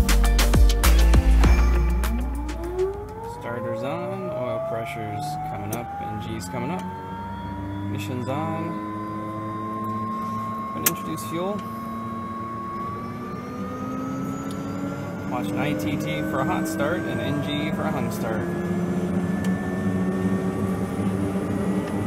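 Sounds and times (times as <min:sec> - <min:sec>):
background music: 0:00.0 - 0:10.0
turboprop starter whine: 0:00.0 - 0:22.0.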